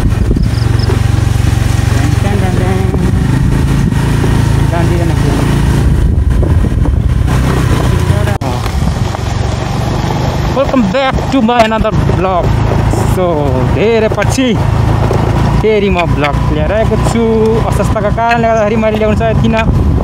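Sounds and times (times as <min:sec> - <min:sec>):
motorcycle engine running: 0:00.0 - 0:20.0
wind buffeting microphone: 0:00.0 - 0:20.0.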